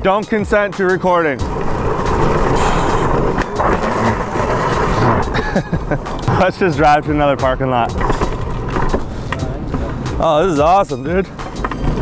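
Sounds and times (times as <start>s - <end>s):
wheels rumbling on asphalt: 0.8s - 12.0s.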